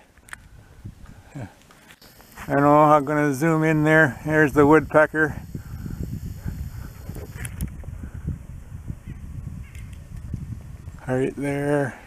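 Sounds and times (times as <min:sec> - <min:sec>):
wind buffeting microphone: 0:00.4 - 0:01.3, 0:02.3 - 0:11.8.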